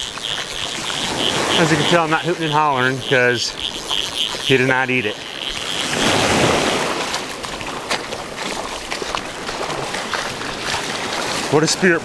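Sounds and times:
wind on microphone: 0.0s - 11.5s
surf washing on sand: 0.7s - 3.5s, 4.4s - 12.0s.

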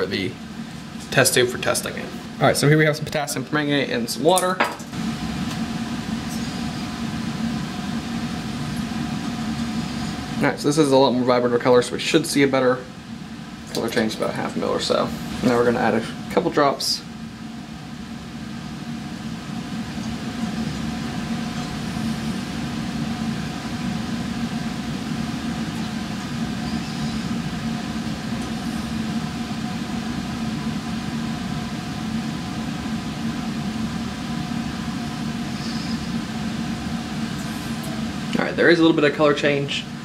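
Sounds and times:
exhaust fan humming: 0.0s - 40.0s.

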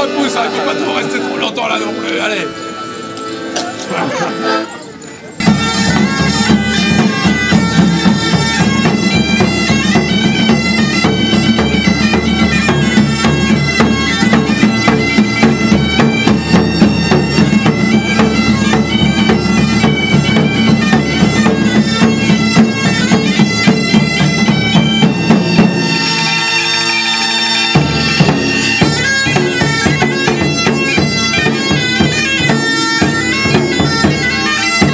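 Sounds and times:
bagpipes playing a tune: 0.0s - 34.9s.

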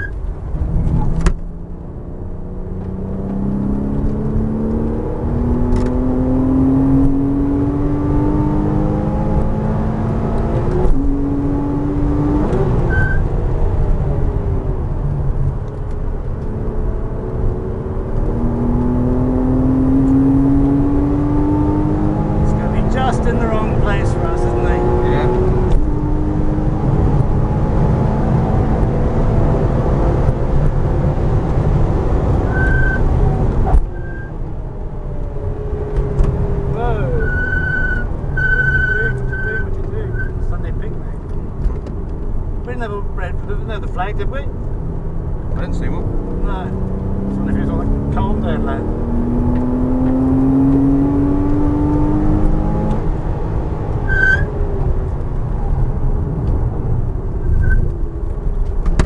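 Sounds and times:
car engine accelerating through gears: 0.0s - 59.0s
road and wind rumble: 0.0s - 59.0s.

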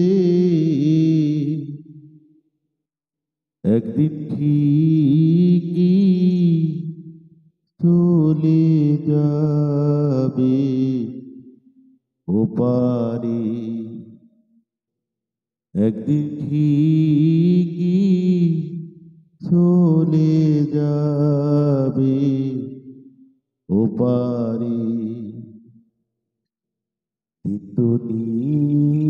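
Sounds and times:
man singing unaccompanied: 0.0s - 1.9s, 3.6s - 7.0s, 7.8s - 11.4s, 12.3s - 14.2s, 15.8s - 23.0s, 23.7s - 25.5s, 27.4s - 29.0s.

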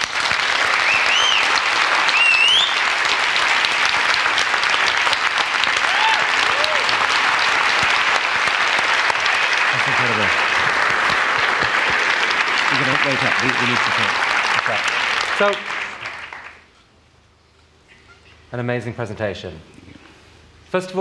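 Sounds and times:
audience applauding: 0.0s - 16.7s
high rising whistles: 0.8s - 1.5s, 2.1s - 2.8s.

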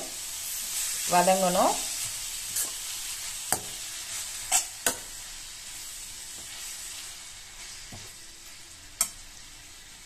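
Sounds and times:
vegetables sizzling in oil: 0.0s - 10.0s
metal spoon clicking on pan: 9.0s - 9.2s.

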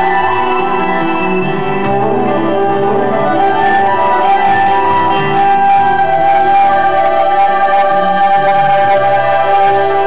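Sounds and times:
bowed fiddle melody: 0.0s - 10.0s
folk-rock band playing: 0.0s - 10.0s.

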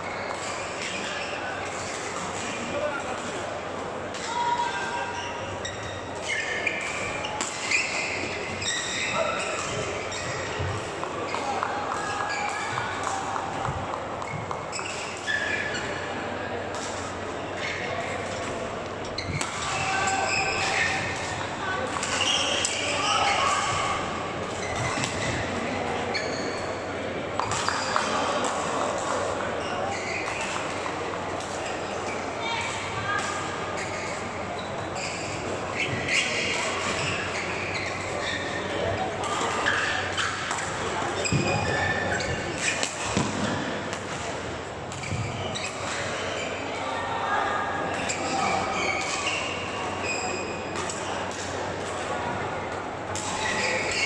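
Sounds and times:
murmur of voices echoing: 0.0s - 54.0s
shoes squeaking on court: 5.0s - 13.2s, 14.2s - 16.2s, 19.1s - 46.6s, 47.9s - 52.1s, 53.2s - 54.0s
rackets striking shuttlecocks: 39.2s - 46.2s.

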